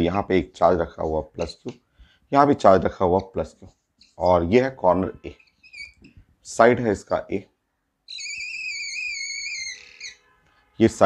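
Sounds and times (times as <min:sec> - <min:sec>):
whiteboard marker squeaking: 0:01.4 - 0:01.8, 0:05.3 - 0:06.2, 0:08.1 - 0:10.3.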